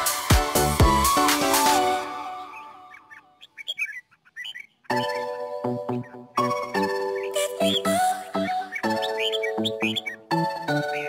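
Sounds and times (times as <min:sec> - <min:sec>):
background music: 0:00.0 - 0:03.4, 0:04.9 - 0:11.0
bird chirping: 0:02.1 - 0:11.0.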